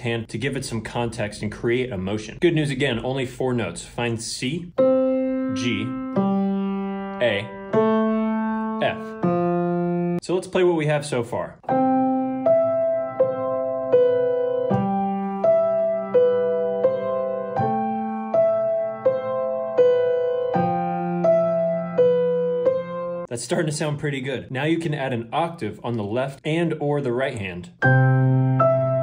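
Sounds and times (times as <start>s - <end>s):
grand piano low notes: 4.6s - 10.2s
grand piano slow melody: 4.7s - 10.2s, 11.6s - 23.3s, 27.8s - 29.0s.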